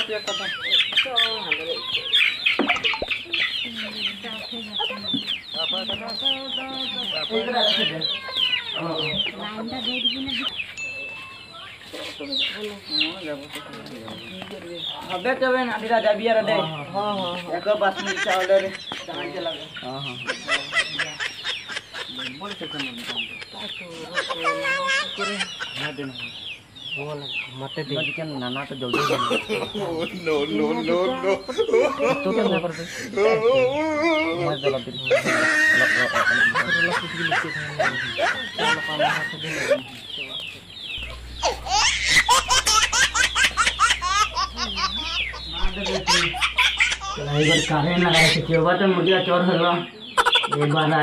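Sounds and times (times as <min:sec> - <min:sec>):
chicken squawking and clucking: 0:41.0 - 0:49.0, 0:50.1 - 0:50.9.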